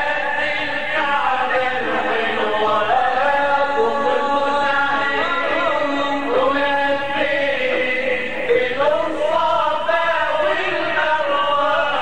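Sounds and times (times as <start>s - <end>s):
men chanting together: 0.0s - 12.0s.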